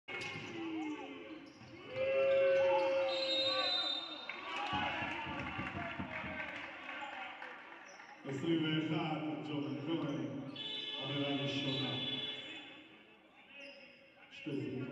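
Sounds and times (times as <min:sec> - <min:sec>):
players' voices: 0:00.1 - 0:14.9
referee's whistle: 0:02.8 - 0:04.5, 0:10.5 - 0:12.9
sneaker squeaks: 0:10.0 - 0:12.7.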